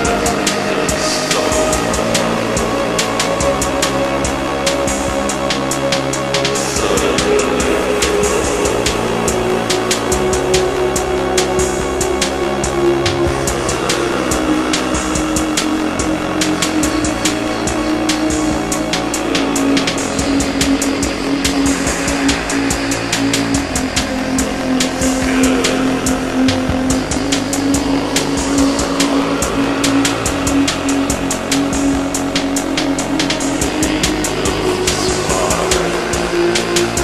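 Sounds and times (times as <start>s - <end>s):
fast ticking beat: 0.0s - 37.0s
held low synth tone: 0.0s - 37.0s
swooping synth sweeps: 0.0s - 37.0s.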